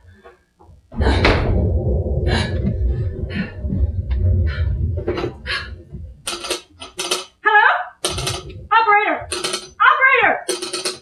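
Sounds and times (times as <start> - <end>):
telephone receiver clicks and rattles: 10.5 - 11.0.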